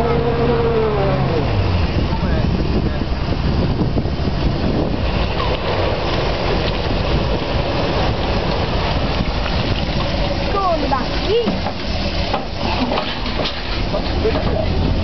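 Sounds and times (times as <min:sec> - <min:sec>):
voices calling out: 0:00.0 - 0:03.3, 0:10.2 - 0:13.0
truck engine rumbling under load: 0:00.0 - 0:15.0.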